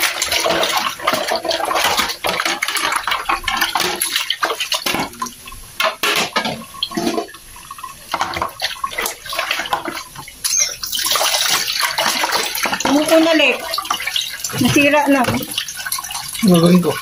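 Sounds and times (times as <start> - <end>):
tap water running into sink: 0.0 - 17.0
dishes knocking: 4.8 - 7.3.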